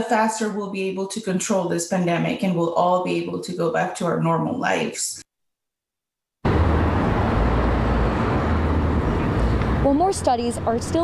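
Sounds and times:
traffic with low rumble: 0:06.4 - 0:11.0.

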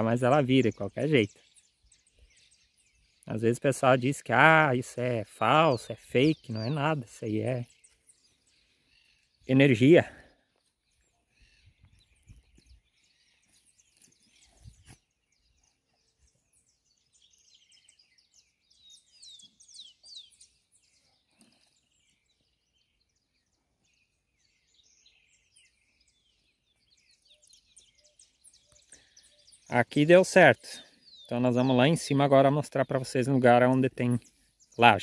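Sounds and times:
bird chirps: 0:00.0 - 0:35.0.

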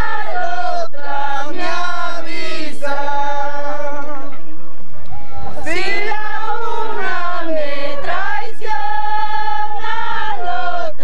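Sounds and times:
women singing together: 0:00.0 - 0:04.3, 0:05.5 - 0:11.0.

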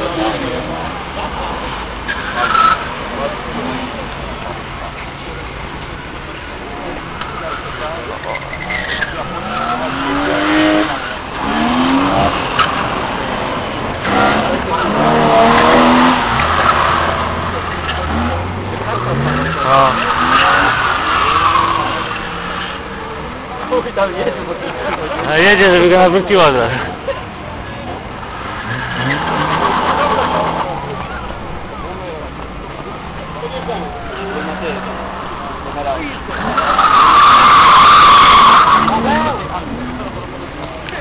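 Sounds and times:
car engine revving: 0:00.0 - 0:40.8
voices: 0:00.0 - 0:41.0.

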